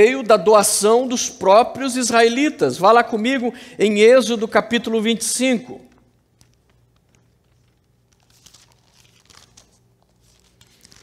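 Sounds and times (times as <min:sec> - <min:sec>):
thin pages rustling: 0:06.2 - 0:11.0.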